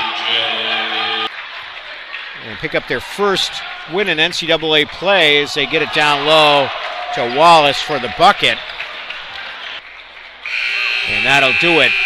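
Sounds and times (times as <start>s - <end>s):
crowd noise in gymnasium: 0.0s - 12.0s
scoreboard buzzer: 10.4s - 12.0s.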